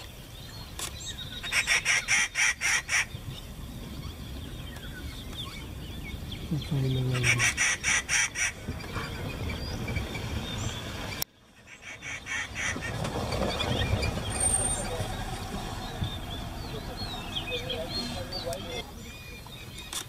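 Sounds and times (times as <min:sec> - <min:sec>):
low rumble: 0:12.8 - 0:19.2.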